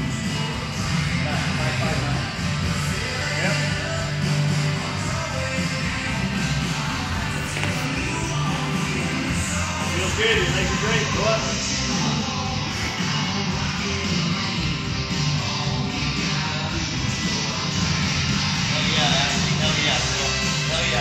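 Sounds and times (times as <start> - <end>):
music playing: 0.0 - 21.0.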